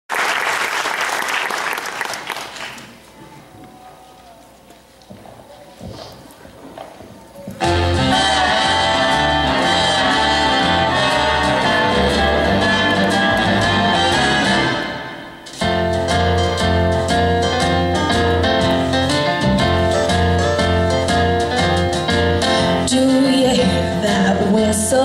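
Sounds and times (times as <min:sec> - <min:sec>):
instrumental backing track: 0:07.2 - 0:25.0.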